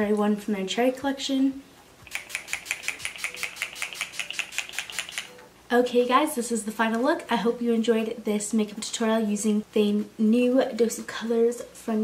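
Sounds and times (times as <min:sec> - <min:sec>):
spray bottle hissing spritzes: 0:02.1 - 0:05.3.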